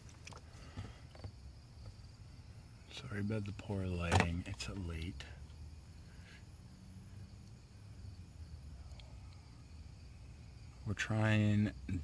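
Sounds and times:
faint crickets chirping: 0:00.0 - 0:12.0.

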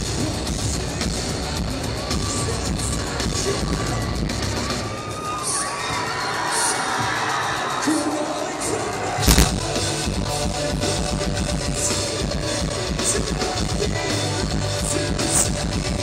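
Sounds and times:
crowd cheering: 0:04.7 - 0:09.6
loud thump: 0:09.3 - 0:09.6.

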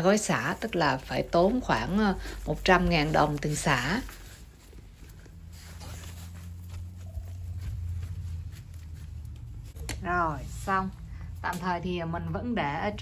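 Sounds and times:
hands patting potting soil: 0:00.0 - 0:10.3
low hum: 0:00.4 - 0:13.0.

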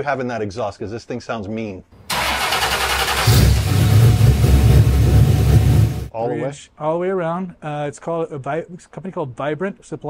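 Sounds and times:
v eight engine exhaust rumble: 0:02.1 - 0:06.1.

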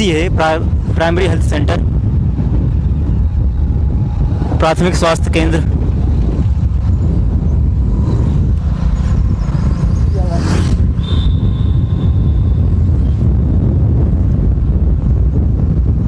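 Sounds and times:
wind buffeting microphone: 0:00.0 - 0:16.0
motorcycle engine rumble: 0:00.6 - 0:16.0.

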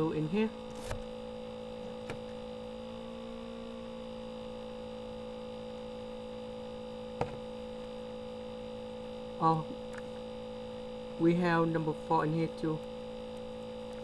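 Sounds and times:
two-tone electrical hum: 0:00.0 - 0:14.0.

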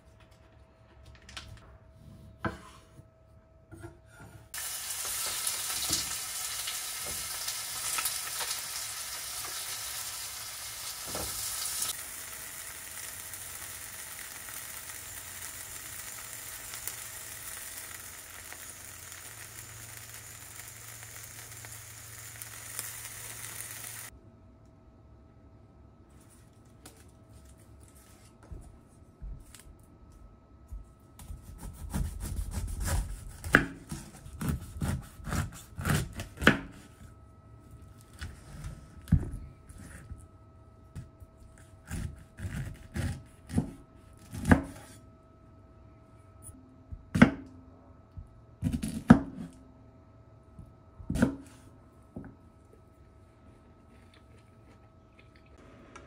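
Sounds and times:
meat sizzling in a frying pan: 0:04.6 - 0:24.1.

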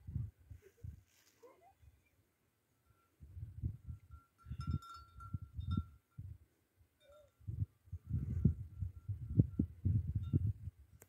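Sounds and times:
wind buffeting microphone: 0:00.0 - 0:01.0, 0:03.2 - 0:06.4, 0:07.4 - 0:11.0.

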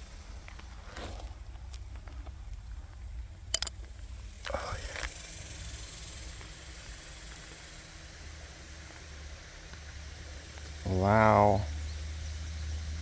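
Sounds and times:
man's wavering vocal sound: 0:10.9 - 0:11.6.

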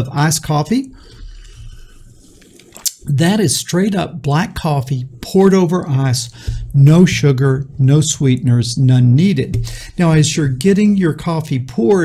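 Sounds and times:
man speaking: 0:00.0 - 0:01.0, 0:02.9 - 0:12.0
man sipping and swallowing: 0:01.1 - 0:03.1.

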